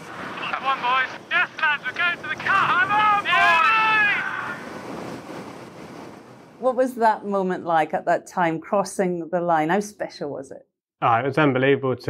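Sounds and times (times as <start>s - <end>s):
rushing water: 0.0s - 6.6s
wind buffeting microphone: 0.1s - 6.9s
high-pitched celebratory shout: 2.5s - 4.6s.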